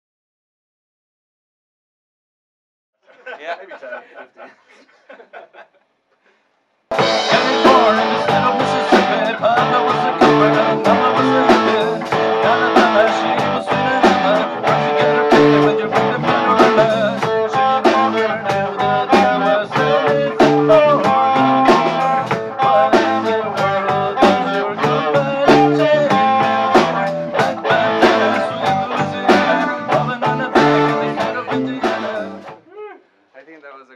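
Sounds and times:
rock band playing: 6.9 - 32.6.

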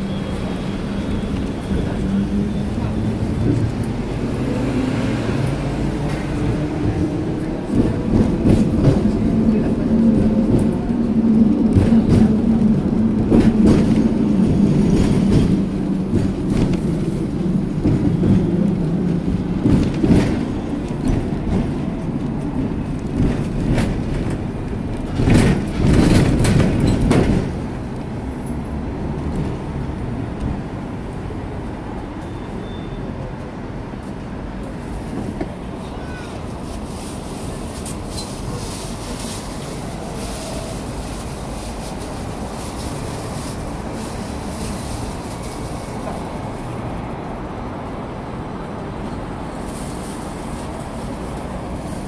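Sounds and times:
tram motor hum: 0.0 - 32.3
wheels rattling over rails: 0.6 - 29.6.

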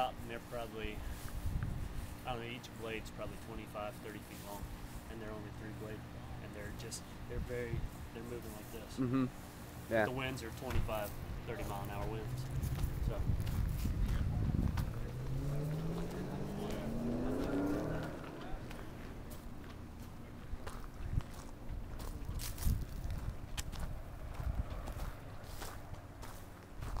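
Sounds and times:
footsteps on leaves and gravel: 10.9 - 27.0
vehicle engine accelerating: 11.3 - 26.4.

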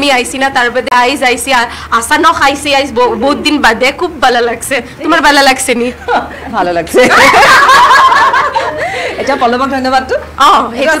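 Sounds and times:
people talking: 0.0 - 8.4, 9.1 - 11.0
group laughing: 6.0 - 9.7.

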